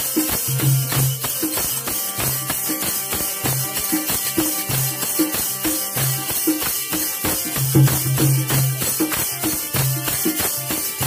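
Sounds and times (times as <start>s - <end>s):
jingling hand percussion: 0.0s - 11.0s.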